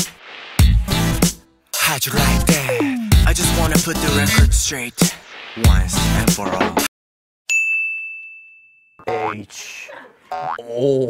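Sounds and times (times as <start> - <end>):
bright bell ding: 7.5 - 9.0
man speaking: 9.0 - 10.0.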